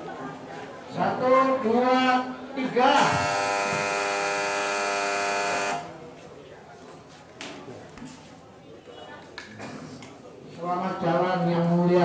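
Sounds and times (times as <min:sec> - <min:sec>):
loud electric buzz: 0:03.0 - 0:05.9.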